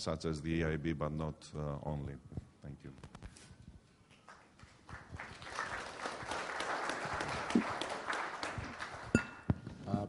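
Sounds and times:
audience applauding: 4.2s - 9.2s.

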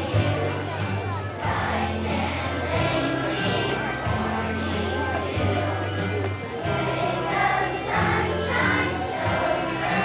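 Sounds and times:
children's choir singing: 0.0s - 10.0s
instrumental accompaniment: 0.0s - 10.0s.

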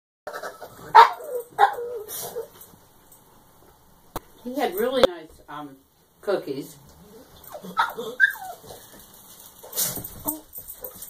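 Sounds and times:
dog barking: 0.3s - 2.5s
dog whining: 0.3s - 2.7s, 7.0s - 11.0s.

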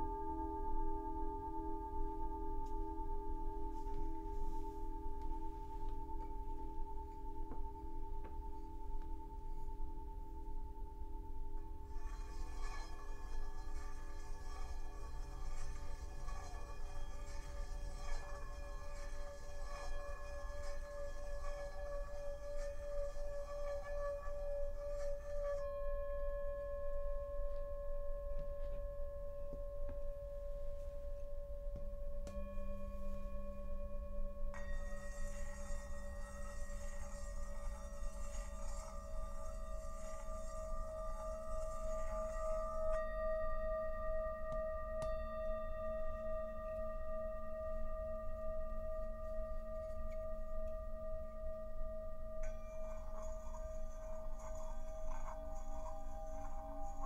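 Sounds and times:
singing bowls ringing: 0.0s - 57.0s.

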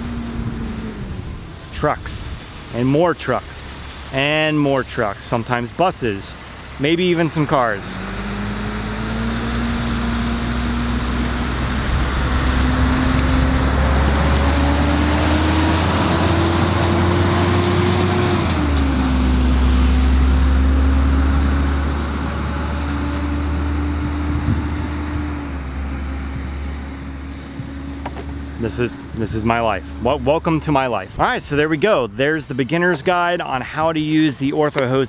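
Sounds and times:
heavy road traffic: 0.0s - 35.0s
truck engine shifting gears: 0.0s - 35.0s.

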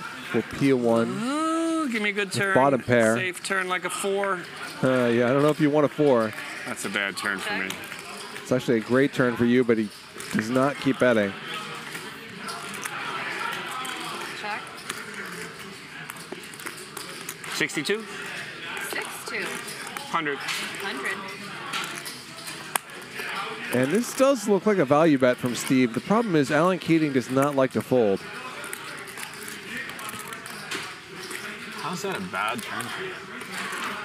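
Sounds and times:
faint murmured talk: 5.8s - 26.0s.

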